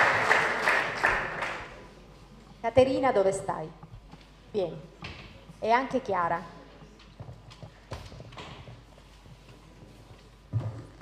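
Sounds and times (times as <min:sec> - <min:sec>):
footsteps on hard floor: 0:07.2 - 0:11.0.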